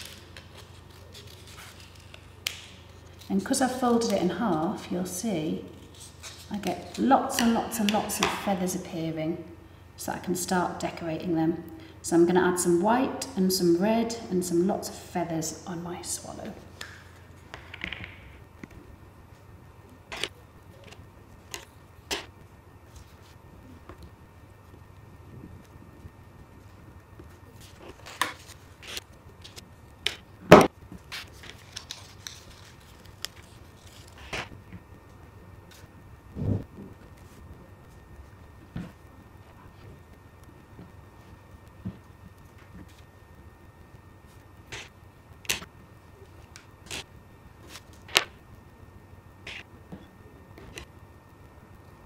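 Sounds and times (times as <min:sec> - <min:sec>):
paper and glue stick handling: 0:00.0 - 0:03.3, 0:31.0 - 0:34.5
low steady hum: 0:00.0 - 0:52.0.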